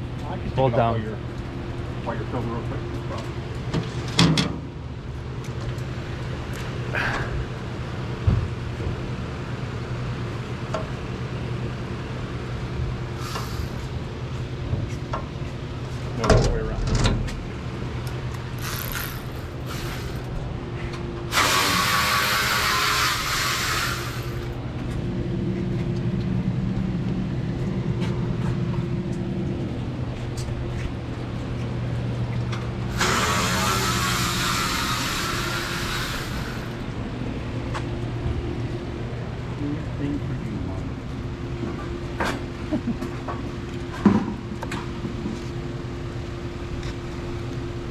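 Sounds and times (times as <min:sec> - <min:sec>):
loud bursts of hissing: 0:13.2 - 0:13.8, 0:18.6 - 0:20.3, 0:21.3 - 0:24.5, 0:32.9 - 0:36.8
concrete pump engine running: 0:15.5 - 0:47.9.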